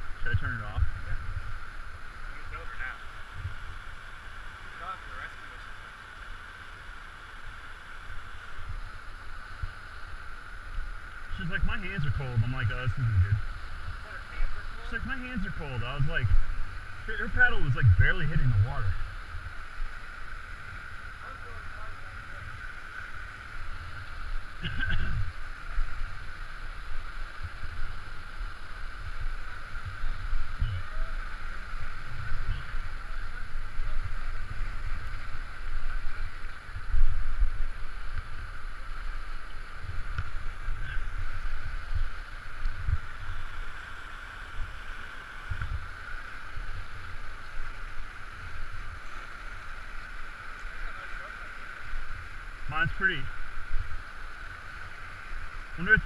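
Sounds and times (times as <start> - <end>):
low thumps on microphone: 39.9 - 43.2.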